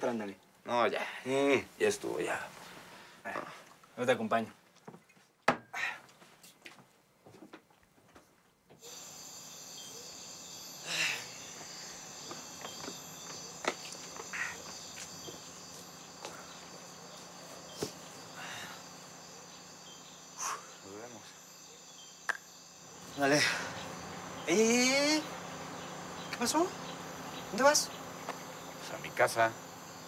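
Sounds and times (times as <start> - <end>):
crickets chirring: 0.0 - 4.5, 8.8 - 30.0.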